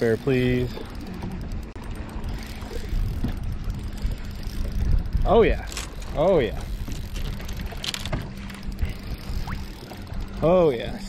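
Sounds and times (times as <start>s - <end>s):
water noise: 0.0s - 11.0s
wind rumble on microphone: 0.0s - 11.0s.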